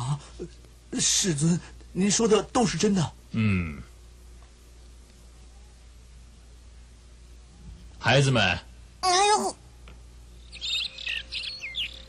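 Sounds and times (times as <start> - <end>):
birds chirping: 10.3 - 12.0.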